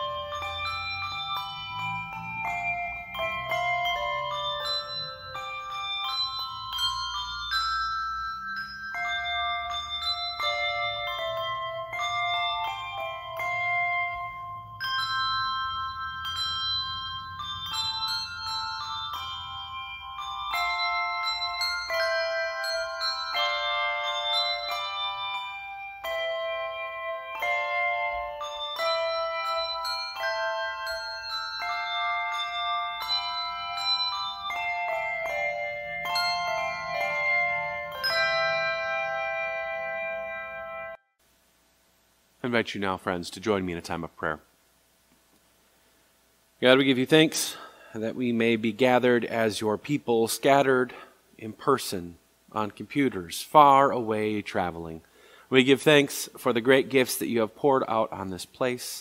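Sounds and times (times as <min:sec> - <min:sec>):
handbell choir playing: 0:00.0 - 0:41.0.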